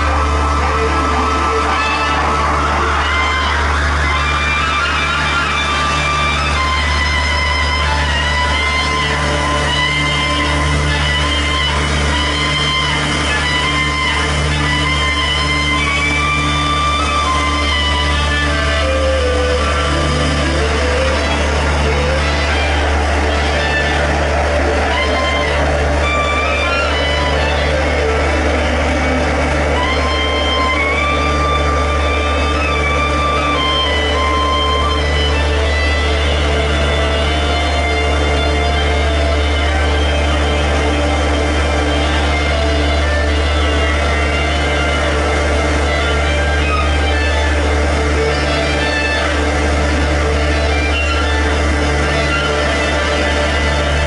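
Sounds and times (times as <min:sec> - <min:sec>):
clarinet slow melody: 0:00.0 - 0:54.0
deep bass drone: 0:00.0 - 0:54.0
pulsing synth note: 0:00.0 - 0:54.0.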